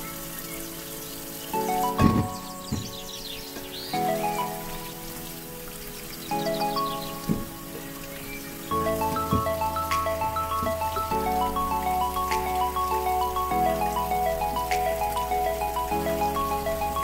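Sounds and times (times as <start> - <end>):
mallet-like background music: 0.5 - 17.0.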